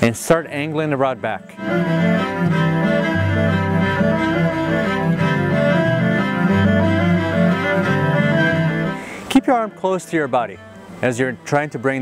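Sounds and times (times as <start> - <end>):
low bowed strings: 0.4 - 12.0
sustained bass line: 0.6 - 10.8.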